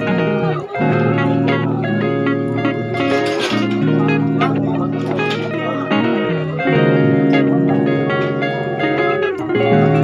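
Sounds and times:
plucked string background music: 0.0 - 10.0.

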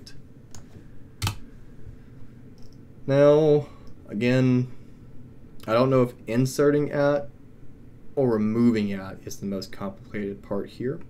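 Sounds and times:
computer keyboard keystroke: 1.2 - 1.4
faint click: 2.6 - 2.8.

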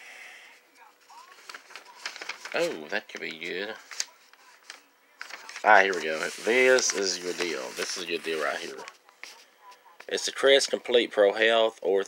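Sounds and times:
paper rustling: 1.0 - 10.2.

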